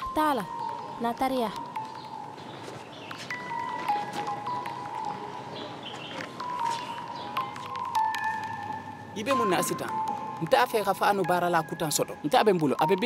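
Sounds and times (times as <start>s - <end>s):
background music melody: 0.0s - 13.0s.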